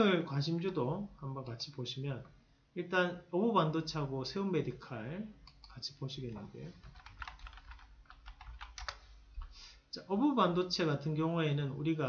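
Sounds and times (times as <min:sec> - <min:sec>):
keyboard typing clicks: 0:05.4 - 0:05.8, 0:06.8 - 0:09.5.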